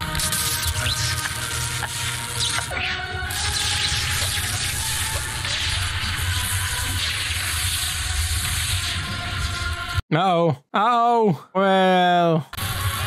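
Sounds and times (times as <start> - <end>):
loud rushing electrical hiss: 3.3 - 10.0.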